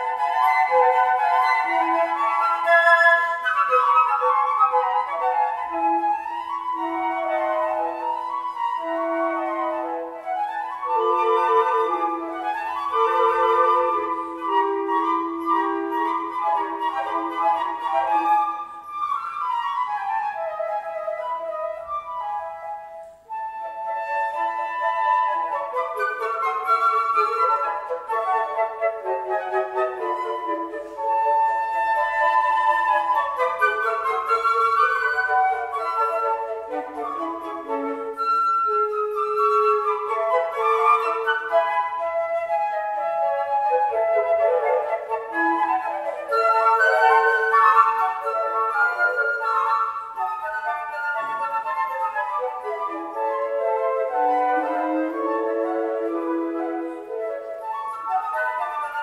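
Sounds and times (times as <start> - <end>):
flutes playing chamber music: 0.0 - 59.0.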